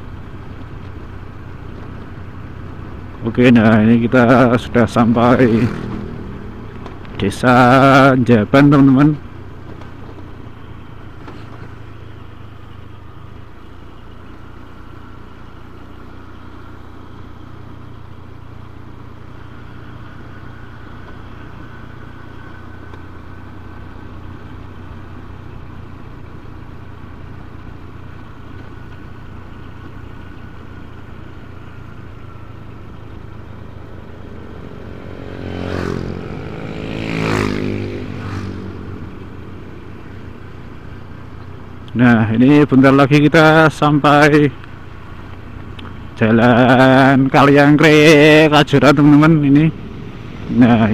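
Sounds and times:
motorcycle engine running: 0.0s - 50.9s
road noise: 0.0s - 50.9s
loud engine revving: 4.3s - 6.6s, 34.0s - 39.6s, 48.0s - 50.9s.

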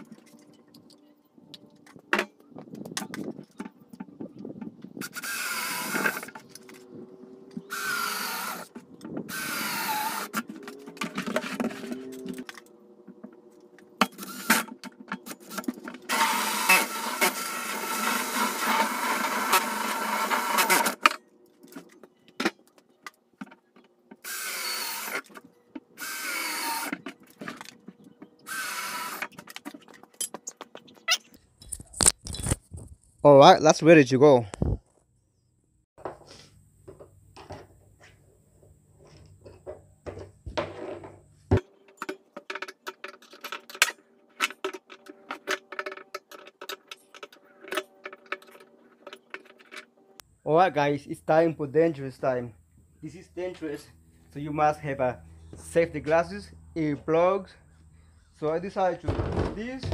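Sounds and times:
cordless drill cutting plastic: 5.0s - 6.4s, 7.6s - 10.5s, 14.2s - 14.7s, 15.4s - 21.1s, 24.2s - 25.3s, 26.0s - 27.0s, 28.5s - 29.4s.

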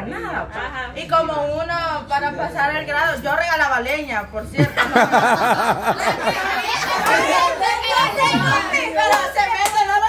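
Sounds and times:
people laughing: 4.6s - 9.0s
adults talking over one another: 5.0s - 9.6s.

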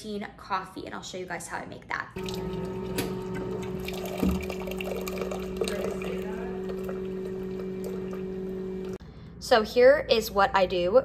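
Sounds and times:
coffee machine pump hum: 2.2s - 9.0s
liquid pouring into mug: 2.2s - 9.0s.

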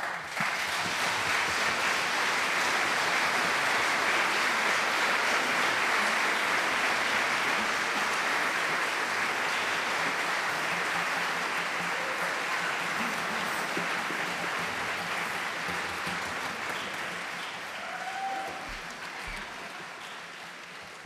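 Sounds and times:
audience applauding: 0.0s - 21.0s.

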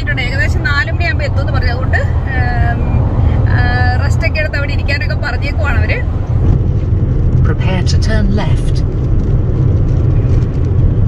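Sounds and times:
car engine and tyre rumble: 0.0s - 11.0s.

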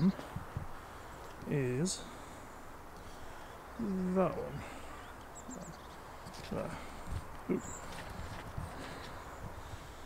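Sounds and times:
footsteps on a path: 5.9s - 9.8s.

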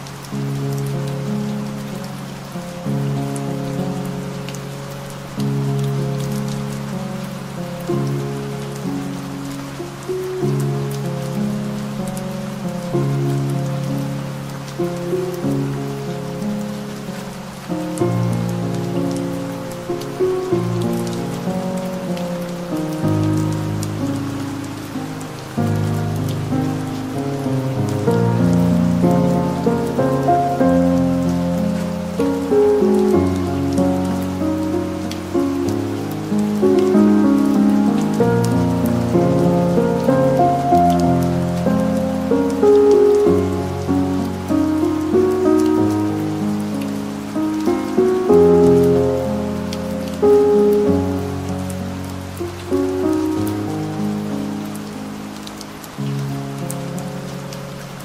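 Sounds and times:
slow calm piano music: 0.0s - 58.0s
soft rain: 0.0s - 58.0s.

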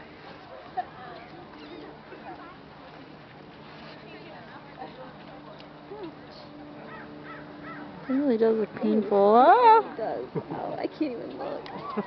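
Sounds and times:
low background murmur: 0.0s - 12.0s
faint bird calls: 1.1s - 2.0s.

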